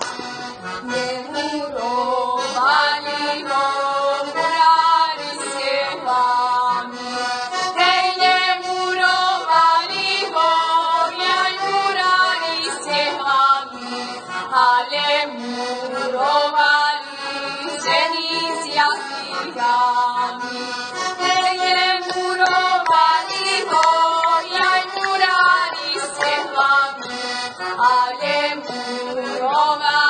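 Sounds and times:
button accordion folk music: 0.0 - 30.0.

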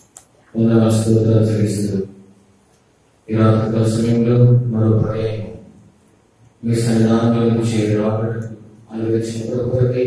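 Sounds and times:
man preaching into a microphone: 0.5 - 2.1, 3.3 - 5.7, 6.6 - 10.0.

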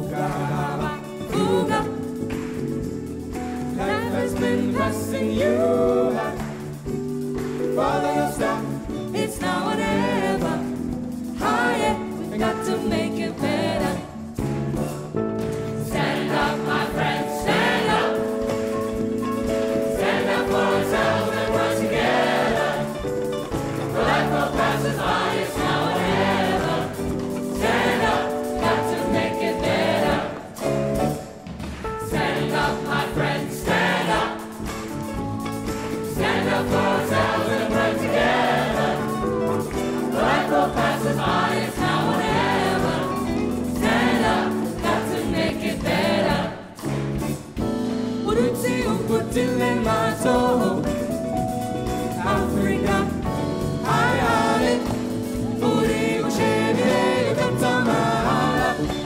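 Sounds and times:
large choir singing: 0.0 - 2.2, 3.7 - 6.9, 7.6 - 14.4, 15.8 - 19.0, 19.6 - 31.2, 32.0 - 35.2, 35.8 - 46.9, 48.2 - 51.2, 52.1 - 59.0.

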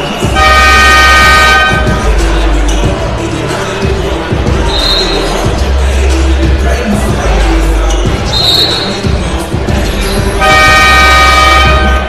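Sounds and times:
arena music: 0.0 - 12.0
arena buzzer tone: 10.4 - 12.0.

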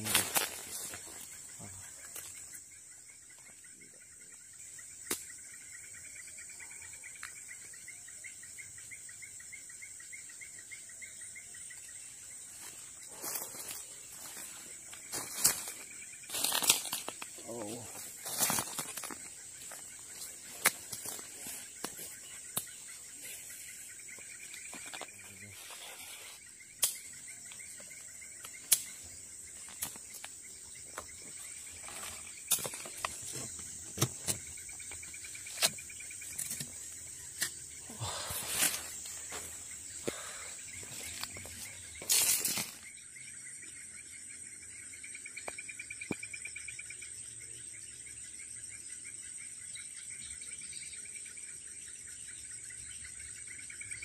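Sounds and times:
twigs and dry leaves snapping: 0.0 - 2.6, 5.0 - 5.5, 12.6 - 23.2, 24.4 - 25.8, 26.8 - 42.8
insect pulsing trill: 0.0 - 54.0
insects buzzing: 0.0 - 54.0.

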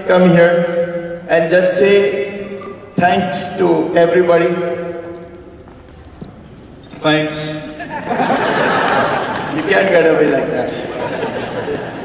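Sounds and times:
faint footsteps: 4.6 - 7.0.

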